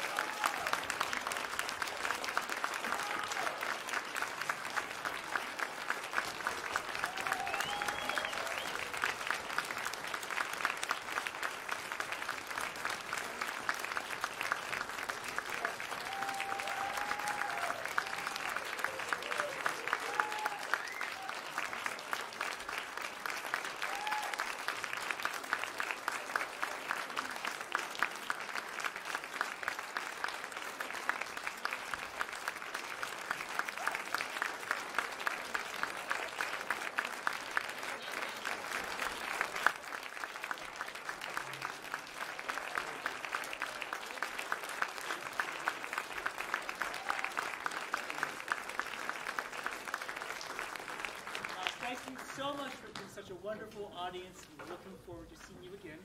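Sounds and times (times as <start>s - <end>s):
audience applauding: 0.0s - 53.4s.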